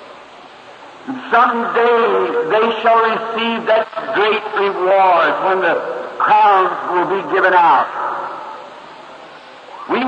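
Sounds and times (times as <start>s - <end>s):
tape hiss: 0.0s - 10.0s
man praying aloud: 1.1s - 8.1s.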